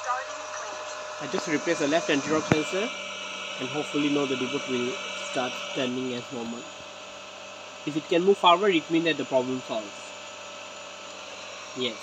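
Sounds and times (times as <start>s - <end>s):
robot vacuum whirring: 0.0s - 6.9s
faint steady tones: 0.0s - 12.0s.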